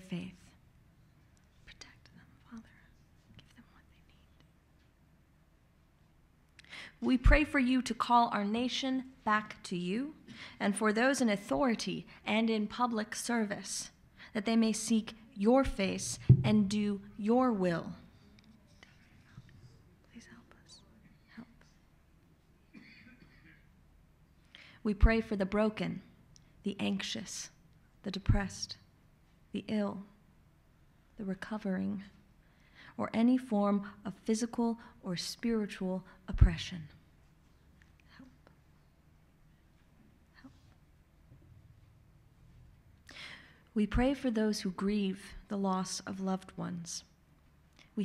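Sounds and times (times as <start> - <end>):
low room hum: 0.0 - 48.0
faint whispered voices: 18.2 - 21.8.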